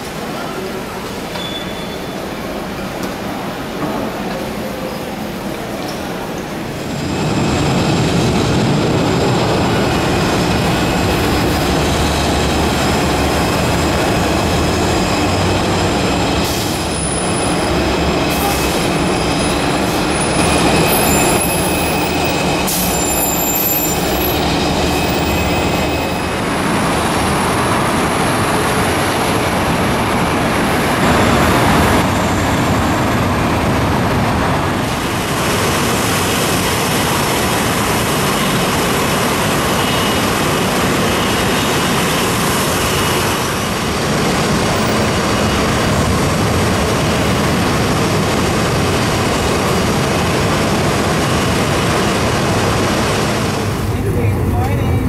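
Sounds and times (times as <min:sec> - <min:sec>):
jet engines rumbling and whining: 0:00.0 - 0:55.0.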